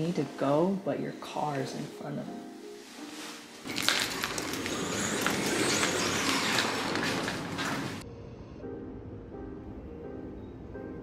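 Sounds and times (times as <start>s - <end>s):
quiet background music: 0.0s - 11.0s
fabric duvet rustling: 1.5s - 8.0s.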